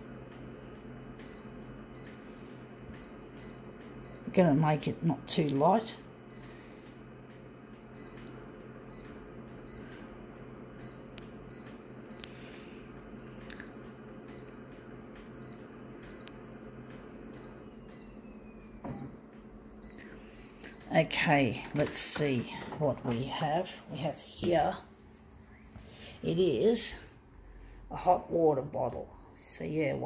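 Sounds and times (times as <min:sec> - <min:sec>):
photocopier humming: 0:00.0 - 0:28.2.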